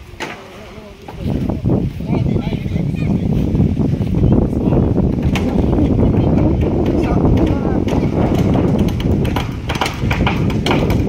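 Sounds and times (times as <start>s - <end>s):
sharp knocks on bamboo: 0.2s - 0.4s, 5.2s - 5.6s, 6.6s - 11.0s
low rumble: 0.6s - 11.0s.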